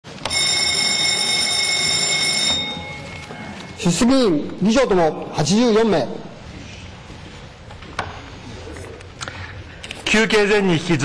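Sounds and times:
signal bell ringing: 0:00.2 - 0:04.0.

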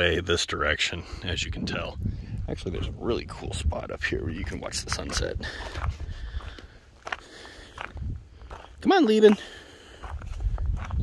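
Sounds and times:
footsteps on gravel: 0:04.2 - 0:11.0.

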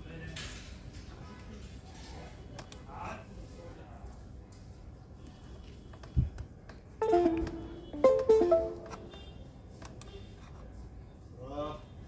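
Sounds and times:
plucked notification chime: 0:07.0 - 0:09.2.

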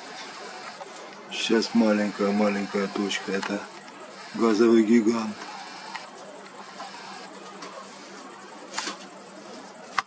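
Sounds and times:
crickets chirping: 0:00.0 - 0:10.0.

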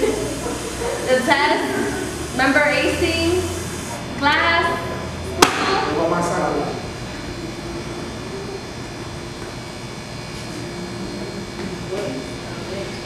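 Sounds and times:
sharp smack: 0:05.4 - 0:05.8.

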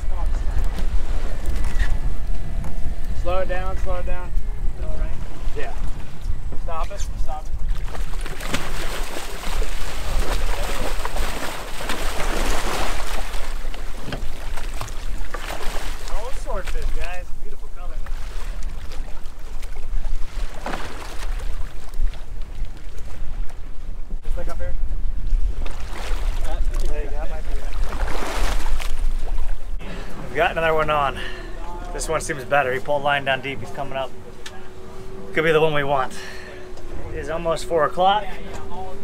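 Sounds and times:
water sloshing against hull: 0:00.0 - 0:39.0
wind buffeting microphone: 0:00.0 - 0:39.0
fish thrashing in water: 0:07.7 - 0:16.2.

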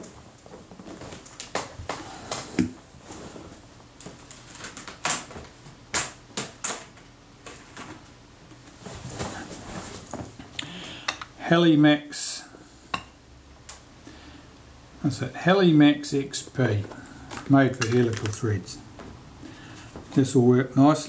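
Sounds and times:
containers and tools clicking: 0:17.4 - 0:18.5.

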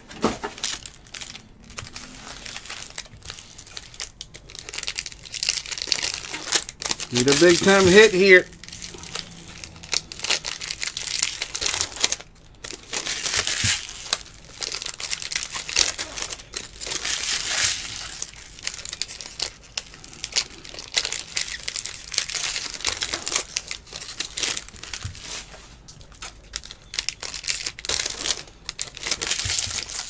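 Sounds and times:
foil wrapper crinkling and tearing: 0:00.1 - 0:30.0
trading cards rustling: 0:00.1 - 0:30.0.

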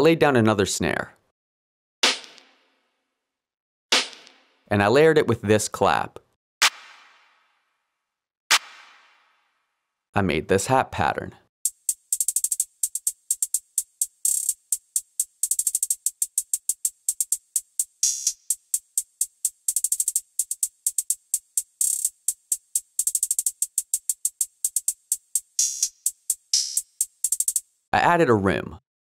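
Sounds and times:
electronic hi-hat ticks and rolls: 0:11.6 - 0:27.7.

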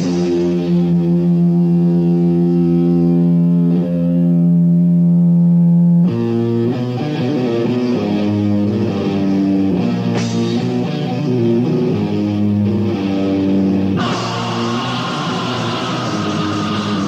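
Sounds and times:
distorted electric guitar: 0:00.0 - 0:17.0.

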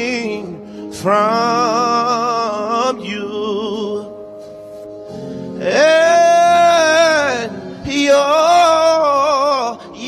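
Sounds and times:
man singing through a microphone: 0:00.0 - 0:04.4, 0:05.6 - 0:10.0.

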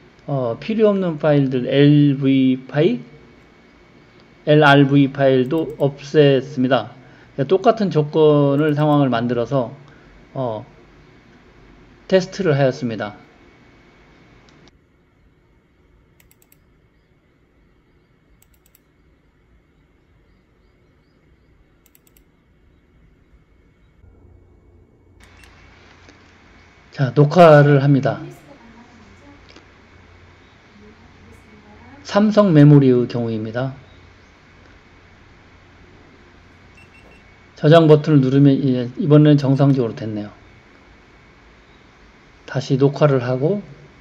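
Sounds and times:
faint computer mouse clicking: 0:05.4 - 0:05.9, 0:16.1 - 0:17.1, 0:18.3 - 0:19.2, 0:21.8 - 0:22.4.

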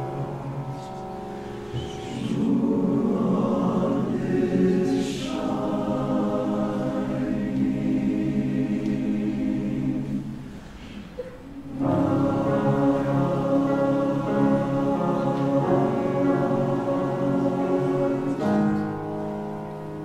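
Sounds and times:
men's chorus singing: 0:01.8 - 0:10.6, 0:11.6 - 0:19.0.

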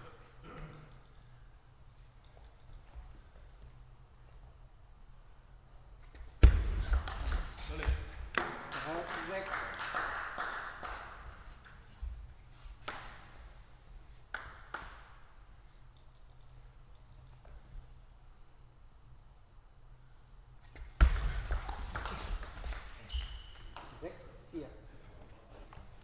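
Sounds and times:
ball bouncing: 0:06.0 - 0:09.1, 0:12.8 - 0:13.5, 0:14.3 - 0:15.3, 0:20.7 - 0:24.0.

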